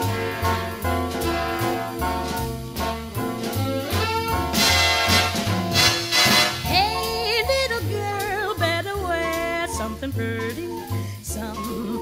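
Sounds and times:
swing band playing: 0.0s - 12.0s.

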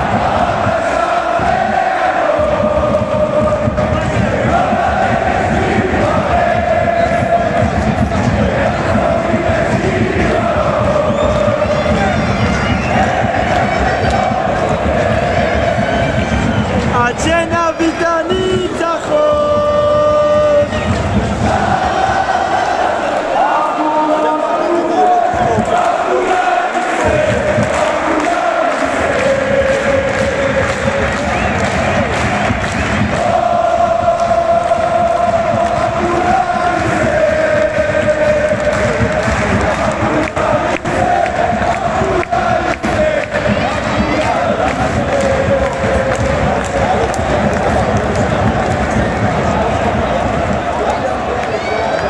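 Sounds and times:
football crowd singing a chant: 0.0s - 52.0s.

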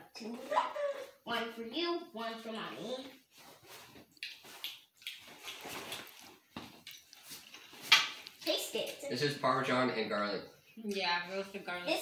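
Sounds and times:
potato chips crunching: 4.1s - 8.4s.

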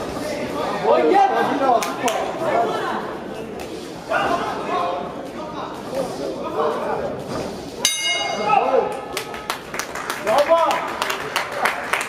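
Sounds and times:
murmur of voices: 0.0s - 12.0s
people clapping: 1.7s - 2.3s, 8.9s - 12.0s
boxing ring bell: 7.8s - 8.7s.

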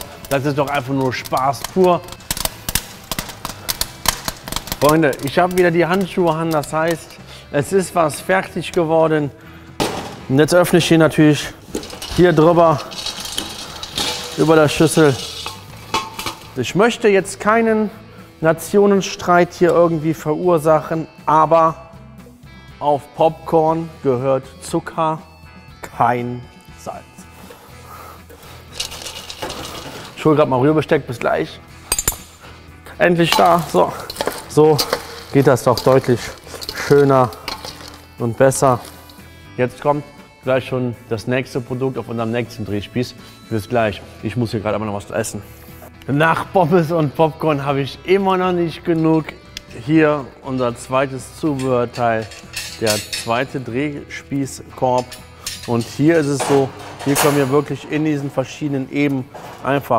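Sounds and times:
popcorn popping: 0.0s - 7.2s, 11.7s - 16.6s, 33.2s - 39.2s.

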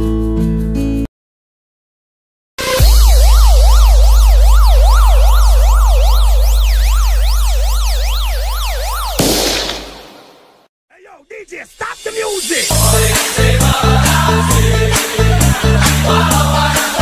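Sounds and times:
police siren wail: 2.6s - 9.4s
person saying hey: 10.9s - 12.8s.

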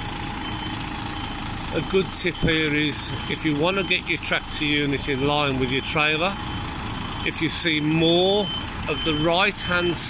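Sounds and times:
diesel truck engine running at low revs: 0.0s - 10.0s.

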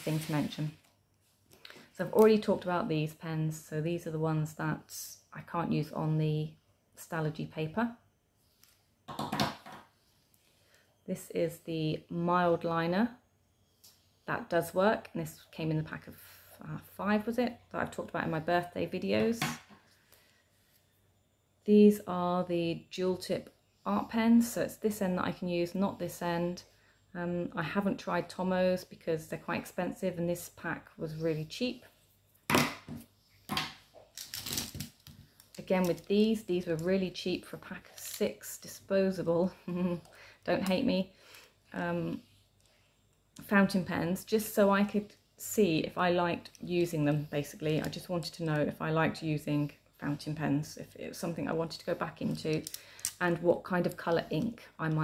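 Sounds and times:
plastic pens clicking and rattling: 52.3s - 53.3s.

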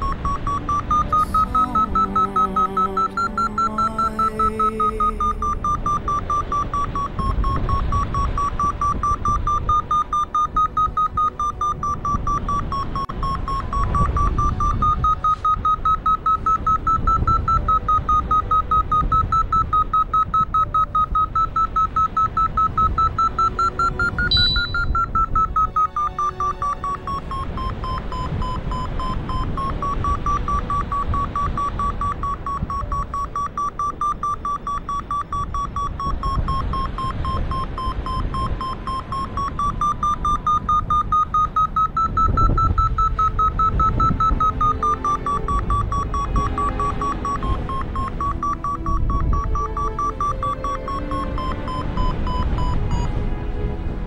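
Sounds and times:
variometer beeping: 0.0s - 53.2s
wind rumbling on microphone: 5.5s - 54.0s.

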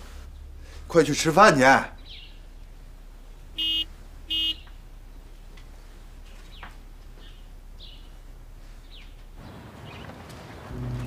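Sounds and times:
vehicle horn beeps: 3.6s - 4.7s.

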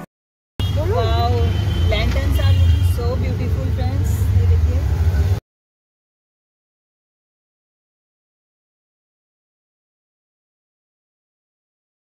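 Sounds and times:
engine and road rumble: 0.6s - 5.4s
people's voices in street: 0.6s - 5.4s.

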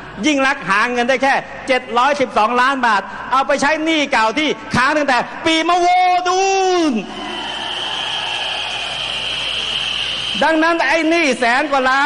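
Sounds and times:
crowd noise: 7.0s - 12.0s
many whistles blowing: 7.2s - 11.0s.

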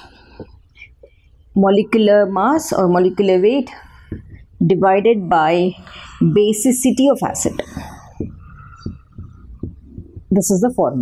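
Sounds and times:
marker squeaking on whiteboard: 7.5s - 10.3s.

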